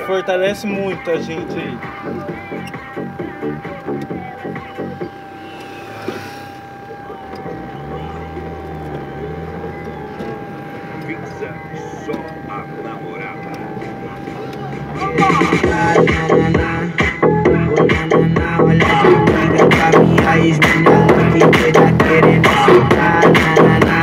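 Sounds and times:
car engine accelerating: 0.0 - 24.0
thin high whine: 0.2 - 15.9.

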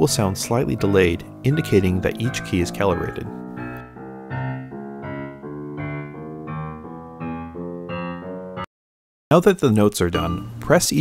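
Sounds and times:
piano notes played one at a time: 0.0 - 8.7.

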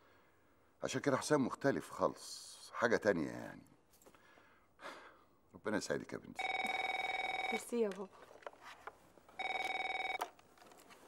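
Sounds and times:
telephone ringing: 6.4 - 8.1, 9.3 - 10.4.

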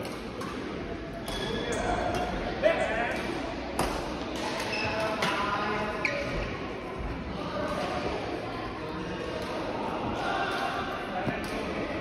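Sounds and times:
rackets hitting shuttlecock: 0.0 - 2.3.

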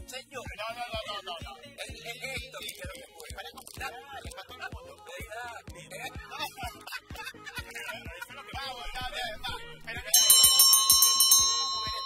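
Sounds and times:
bright high bell ringing rapidly: 10.1 - 12.0.

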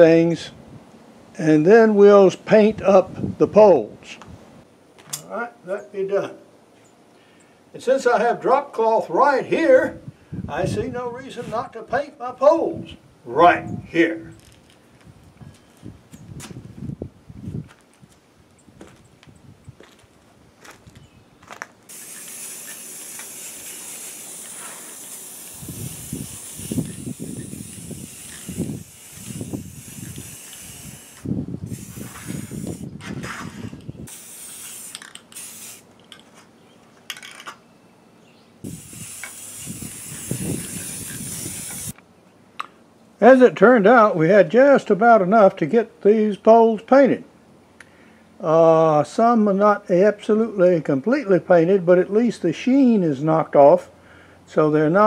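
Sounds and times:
aerosol spray can hissing: 21.9 - 32.9, 34.1 - 35.9, 38.7 - 42.0
handling knocks and rustles: 35.0 - 37.6.

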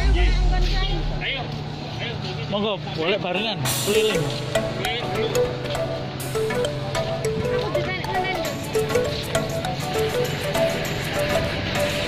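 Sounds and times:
low steady hum: 0.0 - 2.0
people talking: 0.0 - 5.8.

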